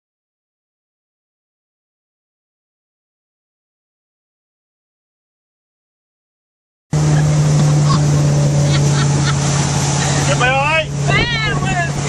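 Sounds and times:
motorboat engine drone: 0:06.9 - 0:12.0
wind and water noise: 0:07.0 - 0:12.0.

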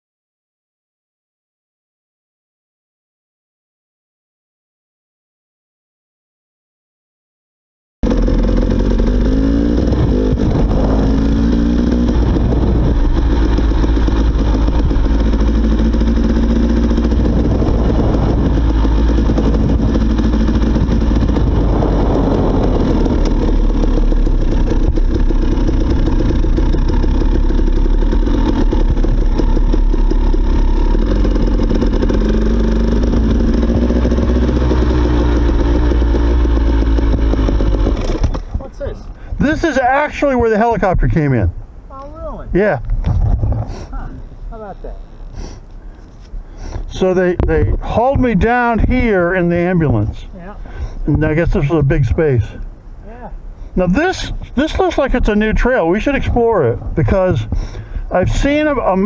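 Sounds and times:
dirt bike engine revving: 0:08.0 - 0:41.3, 0:46.6 - 0:52.6, 0:53.7 - 0:59.0.

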